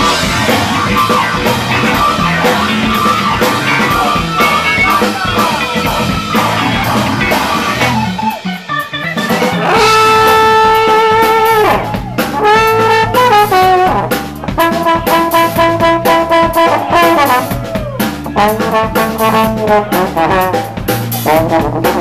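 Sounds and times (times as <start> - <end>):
bass: 0.0 - 22.0
brass lead: 0.0 - 22.0
drums: 0.0 - 22.0
guitar: 0.0 - 22.0.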